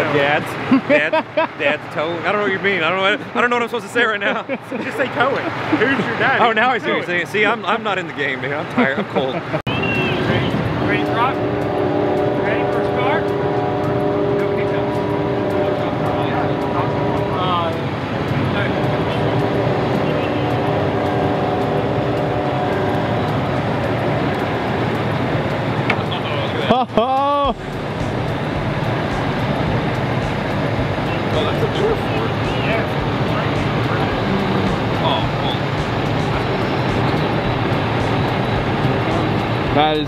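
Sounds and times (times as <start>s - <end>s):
winch and truck engine running: 1.9s - 40.0s
steady whine: 9.7s - 26.7s, 27.3s - 40.0s.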